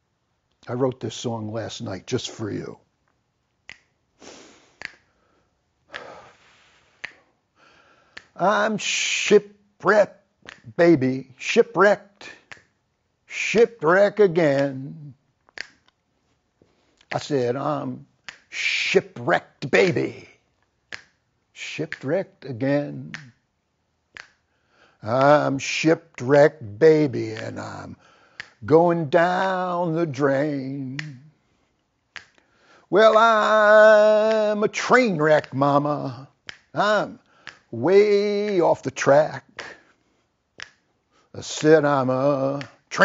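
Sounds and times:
finger snaps: 3.6s - 7.4s, 8.1s - 9.5s, 10.4s - 10.8s, 12.2s - 12.8s, 13.5s - 16.0s, 18.2s - 19.0s, 19.7s - 23.4s, 24.1s - 24.5s, 25.1s - 26.3s, 27.3s - 29.8s, 30.4s - 40.9s, 41.5s - 43.0s
person singing unaccompanied: 8.3s - 12.6s, 13.3s - 15.2s, 17.1s - 20.4s, 21.6s - 23.3s, 25.0s - 31.4s, 32.9s - 39.8s, 41.4s - 43.0s.

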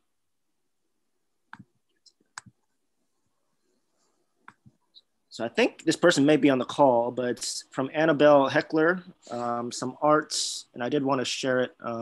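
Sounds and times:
computer mouse clicks: 1.5s - 2.7s, 4.4s - 4.8s.

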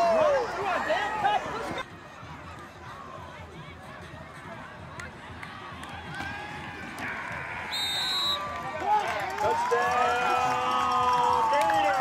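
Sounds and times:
crowd cheering and shouting: 0.0s - 12.0s
high whistle: 7.7s - 8.5s.

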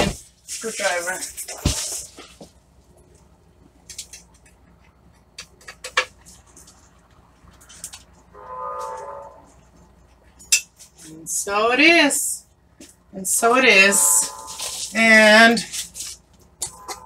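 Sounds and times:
short steady tone: 13.9s - 14.8s.

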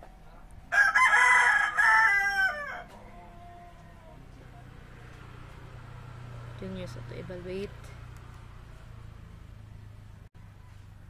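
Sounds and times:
rooster crowing: 0.7s - 4.3s.

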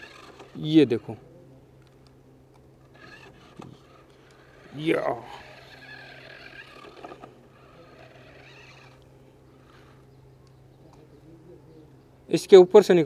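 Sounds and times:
toy car electric motor whine: 0.0s - 1.2s, 2.8s - 10.2s
steady low hum: 0.0s - 13.0s.

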